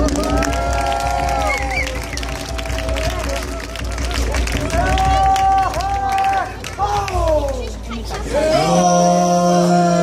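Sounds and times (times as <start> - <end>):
chanted vocal calls: 6.9 - 10.0.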